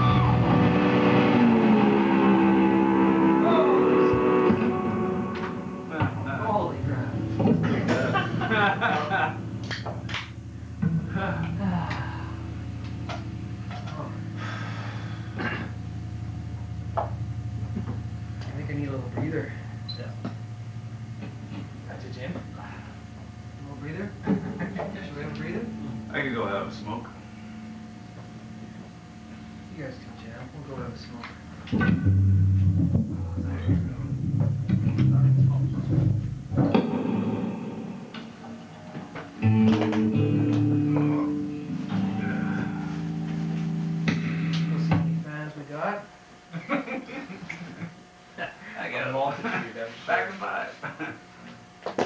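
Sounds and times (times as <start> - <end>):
ringing guitar chord: 0.0 - 29.8, 31.7 - 45.3
electric instrument notes through amps: 0.0 - 45.8
amplifier electrical hum: 0.0 - 52.0
people moving and breathing: 14.2 - 15.8, 22.4 - 23.3, 42.3 - 44.9
voices in the room: 17.7 - 39.4, 40.5 - 52.0.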